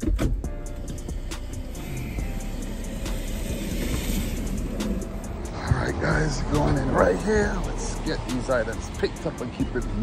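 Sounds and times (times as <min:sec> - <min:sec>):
music with steady beat: 0:00.0 - 0:10.0
street traffic rumble: 0:00.0 - 0:10.0.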